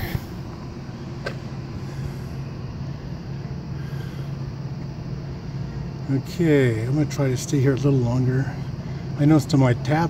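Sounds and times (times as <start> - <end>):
low mechanical hum: 0.0 - 10.0
outdoor rumble: 0.0 - 10.0.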